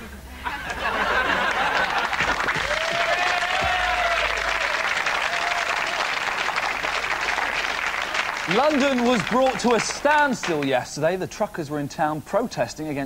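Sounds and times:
audience applauding: 0:00.6 - 0:10.9
person cheering: 0:02.6 - 0:06.2.

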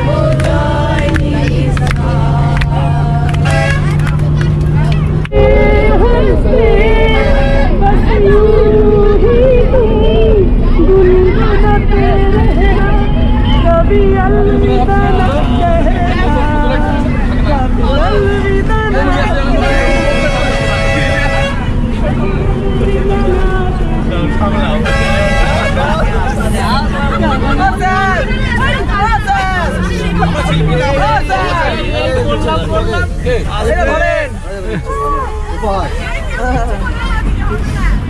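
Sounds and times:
bus engine rumble: 0:00.0 - 0:38.0
many voices chattering: 0:00.0 - 0:38.0
vehicle horn blowing: 0:03.4 - 0:04.0, 0:07.1 - 0:08.0, 0:19.5 - 0:21.8, 0:24.8 - 0:26.1.

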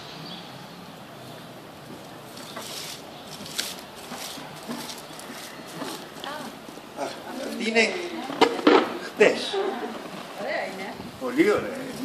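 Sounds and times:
dry straw rustling: 0:01.9 - 0:07.7.

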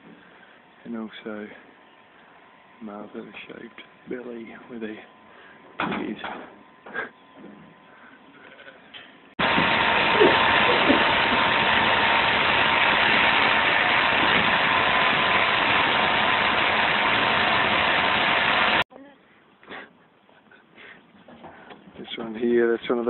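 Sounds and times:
electric shearing handpiece buzzing: 0:09.4 - 0:18.8.

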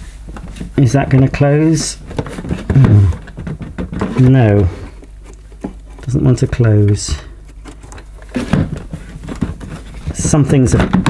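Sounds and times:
person grunting: 0:02.7 - 0:03.2.

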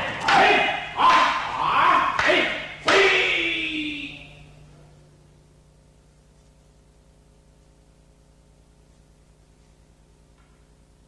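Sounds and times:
people shouting kiai: 0:00.0 - 0:04.3.

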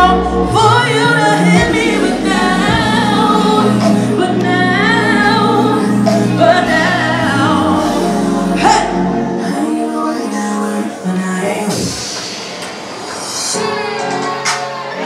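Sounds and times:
loud music with low bass: 0:00.0 - 0:09.8
woman singing into microphone: 0:00.0 - 0:12.1
voices singing along: 0:00.0 - 0:15.0.

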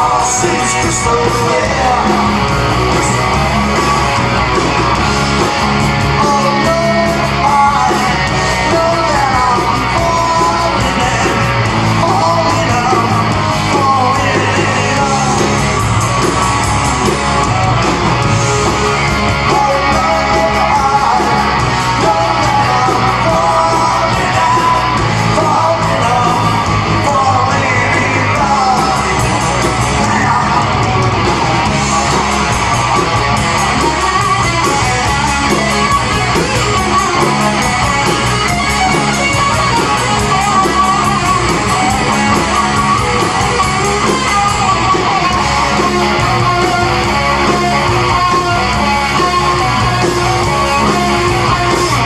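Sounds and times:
bass guitar: 0:00.0 - 0:52.0
distorted electric guitars: 0:00.0 - 0:52.0
drums: 0:00.0 - 0:52.0
person shouting singing: 0:06.1 - 0:15.7, 0:18.8 - 0:29.3, 0:29.9 - 0:31.2.

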